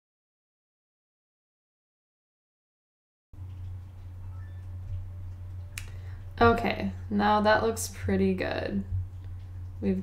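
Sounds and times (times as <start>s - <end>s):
steady low hum: 3.4s - 10.0s.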